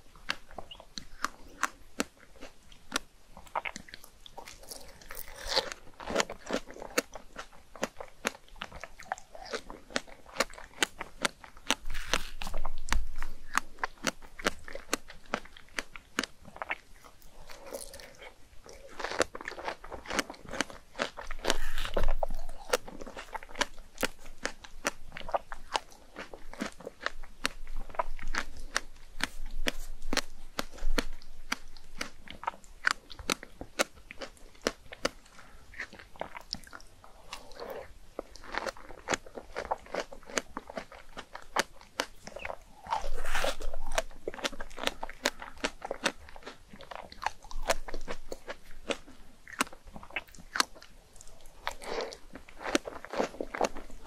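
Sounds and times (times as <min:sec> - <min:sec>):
close chewing and biting: 0:00.0 - 0:54.0
crunchy clicks and mouth sounds: 0:00.0 - 0:54.0.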